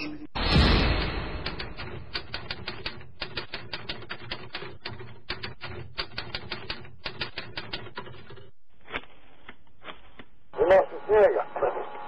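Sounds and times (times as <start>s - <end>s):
typewriter key clicks: 1.4s - 8.5s.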